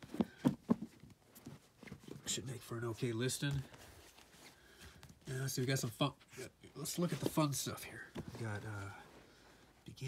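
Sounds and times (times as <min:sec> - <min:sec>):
books set down with soft knocks: 0:00.0 - 0:02.3, 0:06.9 - 0:09.0
faint rustling of books: 0:00.0 - 0:10.0.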